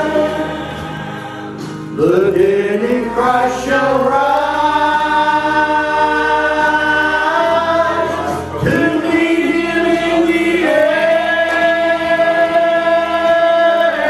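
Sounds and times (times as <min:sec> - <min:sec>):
man singing gospel into microphone: 0:00.0 - 0:14.0.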